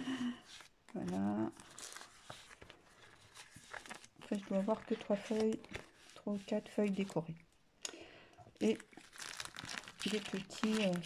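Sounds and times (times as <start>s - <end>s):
paper sheets rustling: 0.2s - 7.3s, 9.0s - 11.0s.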